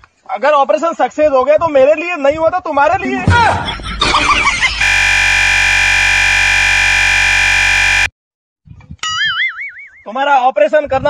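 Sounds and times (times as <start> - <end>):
steady synthesizer chord: 4.0 - 8.1.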